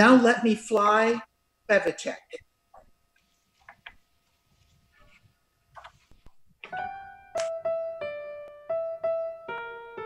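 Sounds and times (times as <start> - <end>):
piano chord ringing: 6.6 - 10.0.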